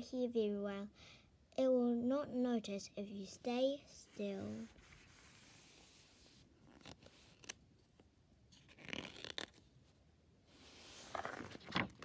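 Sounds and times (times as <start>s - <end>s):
paper rustling: 10.7s - 12.0s.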